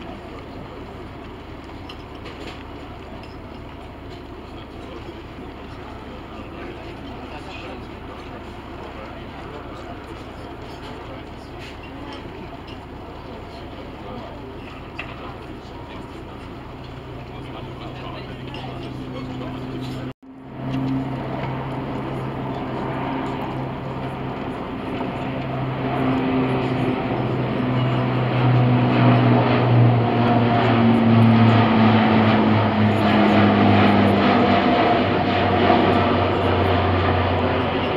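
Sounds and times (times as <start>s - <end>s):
turboprop aircraft passing overhead: 0.0s - 37.9s.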